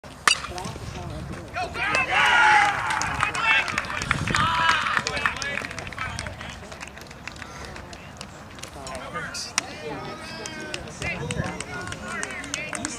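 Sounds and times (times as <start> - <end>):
baseball bat cracking ball: 0.2 - 0.8
spectators cheering and shouting: 1.6 - 5.6.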